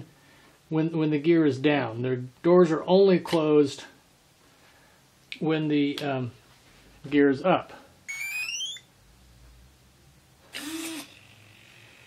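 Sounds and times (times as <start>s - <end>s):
rising start-up beeps: 8.1s - 8.8s
servo whirr: 10.5s - 12.0s.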